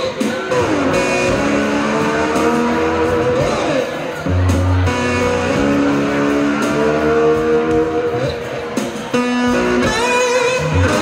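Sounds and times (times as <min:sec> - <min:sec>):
amplified cigar box guitar blues: 0:00.0 - 0:11.0.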